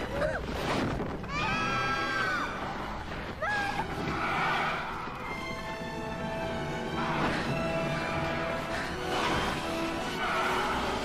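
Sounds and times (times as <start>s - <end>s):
dramatic orchestral music: 0.0s - 11.0s.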